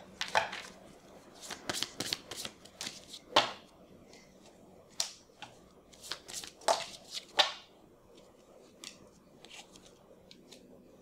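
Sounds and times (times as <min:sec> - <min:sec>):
cards being shuffled: 0:01.4 - 0:03.3, 0:05.9 - 0:07.5, 0:08.2 - 0:10.7.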